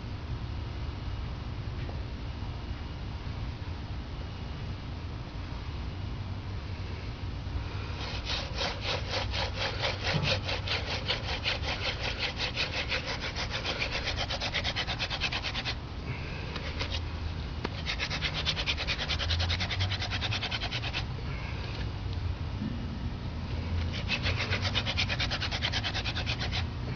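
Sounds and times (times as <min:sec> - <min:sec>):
wooden spindle rasping in notch: 0:07.9 - 0:15.8, 0:16.5 - 0:17.0, 0:17.6 - 0:21.1, 0:23.9 - 0:26.7.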